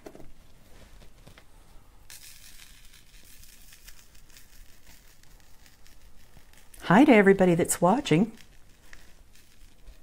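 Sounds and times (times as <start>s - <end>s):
powder grains pouring hiss: 2.0s - 10.0s.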